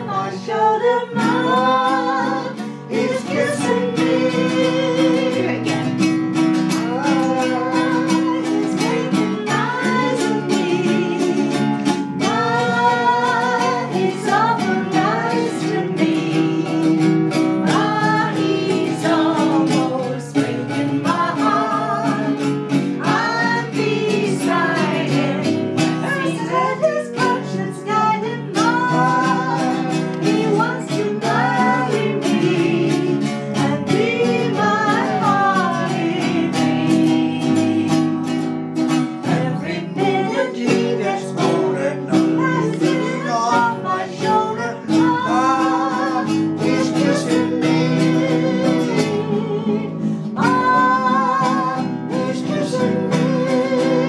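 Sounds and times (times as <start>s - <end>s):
voices singing a popular song: 0.0s - 6.1s, 6.7s - 38.4s, 39.2s - 54.0s
plucked string instrument: 0.0s - 54.0s
strummed acoustic guitar: 0.0s - 54.0s.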